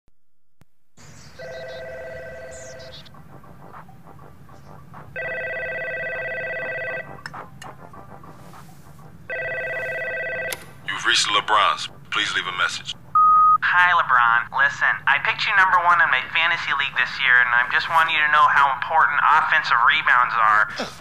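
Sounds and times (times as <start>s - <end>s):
telephone ringing: 1.4s - 3.1s, 5.2s - 7.2s, 9.3s - 10.8s.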